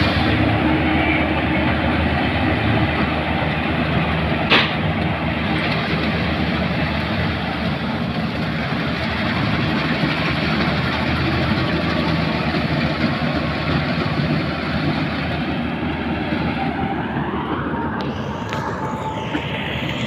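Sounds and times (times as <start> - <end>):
combine harvester droning: 0.0 - 20.0.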